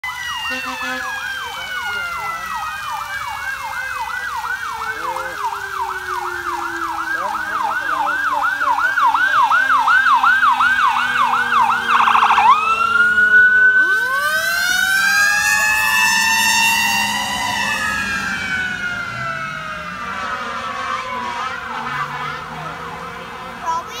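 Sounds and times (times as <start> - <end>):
fire engine siren: 0.0 - 24.0.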